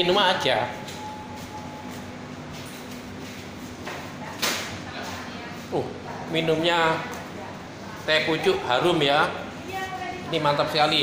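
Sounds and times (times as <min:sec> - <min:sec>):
restaurant room noise: 0:00.0 - 0:11.0.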